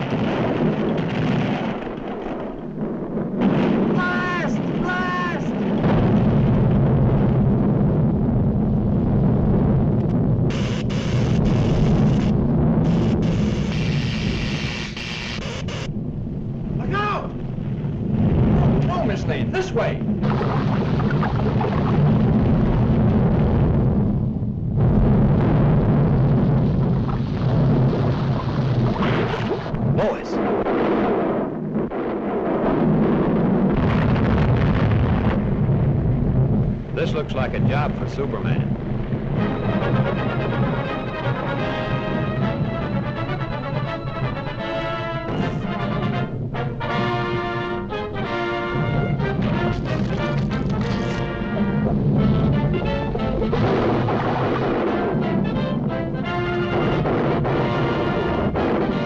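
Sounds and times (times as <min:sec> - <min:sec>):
cartoon volcano rumble with blasts: 0:00.0 - 0:59.0.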